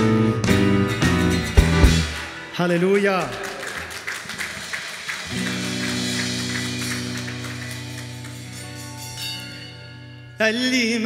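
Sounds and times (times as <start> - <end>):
drums with cymbal wash: 0.0 - 2.2
acoustic guitar: 0.0 - 2.6, 5.2 - 11.0
held chord: 5.7 - 11.0.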